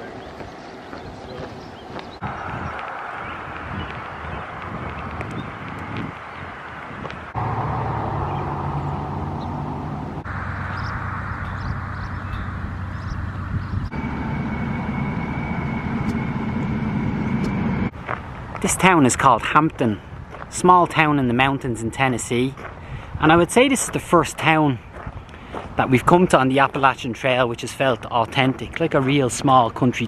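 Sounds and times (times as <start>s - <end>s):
car engines passing: 2.0s - 14.3s
steady high tone: 7.4s - 17.9s.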